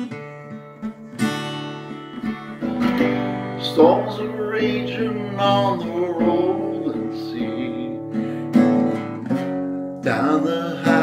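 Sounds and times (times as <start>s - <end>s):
acoustic guitar chords ringing: 0.0s - 11.0s.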